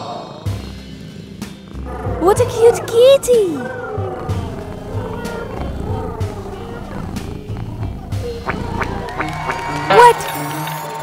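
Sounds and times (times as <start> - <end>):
cat making wavering calls: 2.2 - 10.2
background music with low beat: 3.8 - 10.3.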